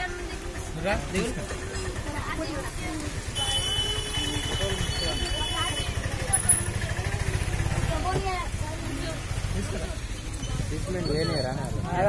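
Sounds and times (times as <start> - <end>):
vehicle engine idling: 0.1 - 11.0.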